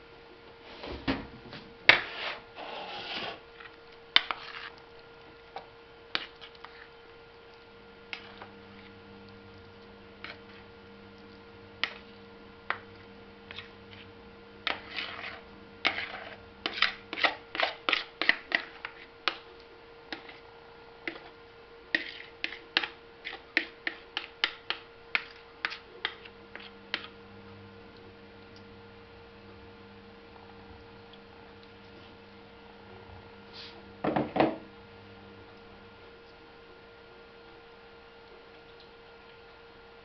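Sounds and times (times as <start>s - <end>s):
steady low hum: 0.0s - 40.0s
knife scraping container rim: 14.7s - 19.1s.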